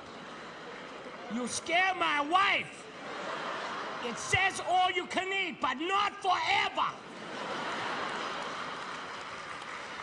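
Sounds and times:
audience laughing: 0:02.8 - 0:04.7, 0:07.0 - 0:09.5
audience applauding: 0:07.4 - 0:10.0.

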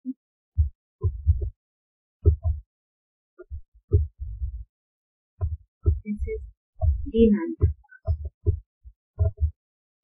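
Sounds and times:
soft low thuds: 0:00.6 - 0:01.6, 0:02.2 - 0:02.6, 0:03.4 - 0:04.7, 0:05.4 - 0:09.6.

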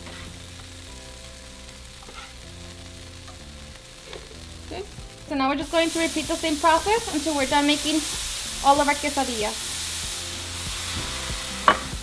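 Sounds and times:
food sizzling in a pan: 0:00.0 - 0:12.0
soft background music: 0:00.0 - 0:12.0.

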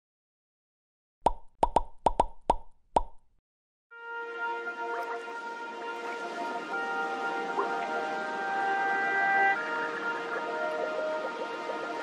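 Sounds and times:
pop sound effects: 0:01.3 - 0:03.2
music: 0:03.9 - 0:12.0.

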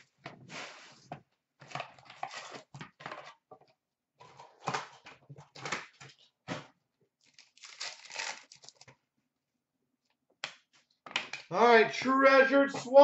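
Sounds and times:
cards rustling: 0:07.2 - 0:08.9
wrapper tearing and crinkling: 0:07.2 - 0:08.9.

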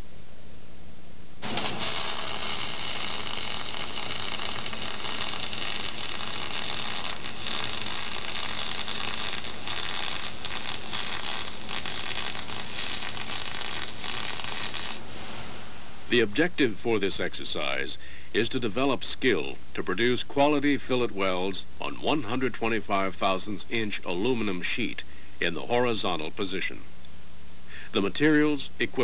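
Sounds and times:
videotape hiss: 0:01.1 - 0:29.0
welding arc hissing and crackling: 0:01.4 - 0:15.6.

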